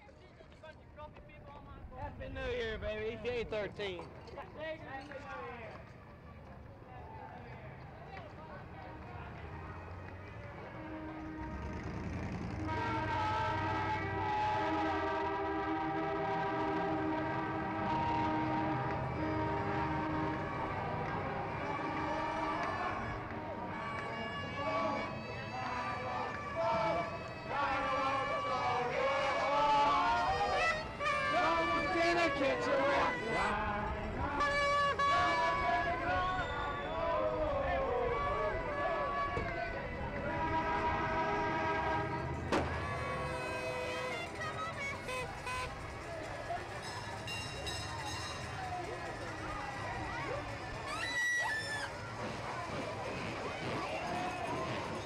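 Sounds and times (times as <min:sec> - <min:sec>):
crowd voices: 0:00.0 - 0:55.0
low rumble of city noise: 0:00.0 - 0:55.0
many horns sounding together: 0:08.6 - 0:55.0
horn sliding down in pitch: 0:10.6 - 0:33.6.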